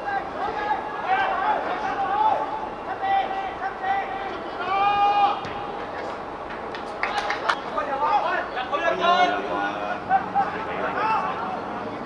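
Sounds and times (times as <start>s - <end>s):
high drawn-out shout: 0.0s - 5.7s.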